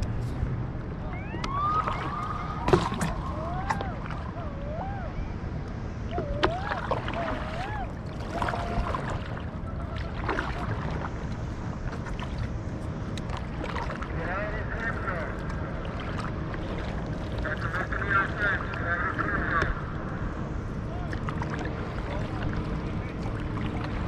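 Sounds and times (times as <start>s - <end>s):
wind and water rumble: 0.0s - 24.0s.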